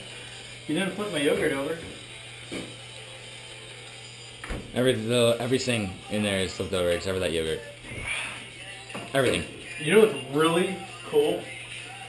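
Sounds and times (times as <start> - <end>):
mini fridge humming: 0.0 - 12.0.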